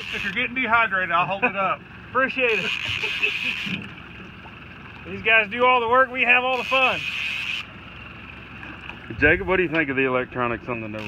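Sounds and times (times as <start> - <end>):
low boat rumble: 0.0 - 11.0.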